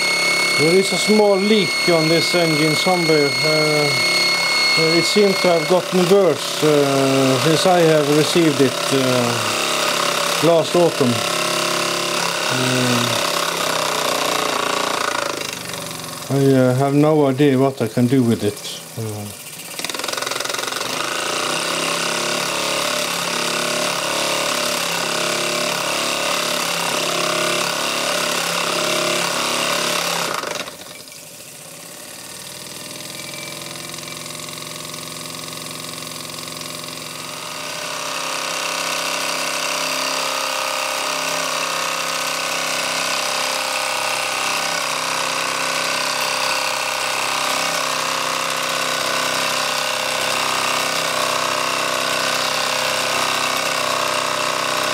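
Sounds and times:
toy steam engine running: 0:00.0 - 0:54.9.

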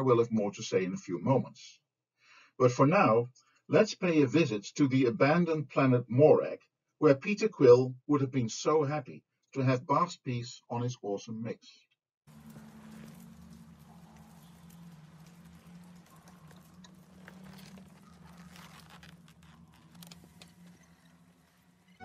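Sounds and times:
faint clicks and pattering: 0:12.3 - 0:22.0
low hum: 0:12.3 - 0:22.0.

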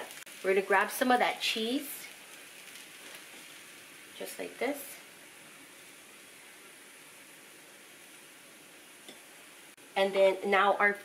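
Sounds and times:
tortillas sizzling in oil: 0:00.0 - 0:11.0.

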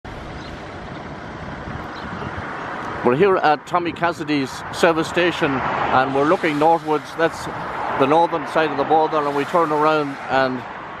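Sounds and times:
wind buffeting microphone: 0:00.1 - 0:08.1.

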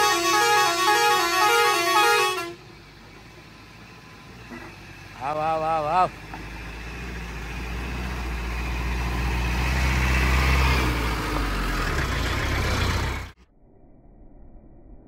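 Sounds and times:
diesel truck engine: 0:00.0 - 0:13.4.

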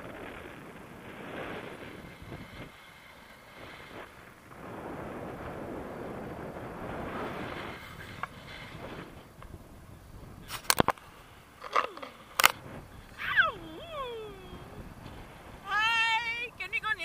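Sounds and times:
sharp clicks: 0:11.6 - 0:12.6
woman whooping: 0:13.2 - 0:14.8.

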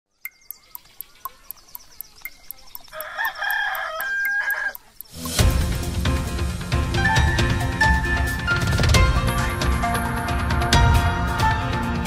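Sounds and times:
clock ticking fast: 0:00.3 - 0:06.2
rooster crowing: 0:02.9 - 0:04.9
loud theme music: 0:05.2 - 0:12.0.

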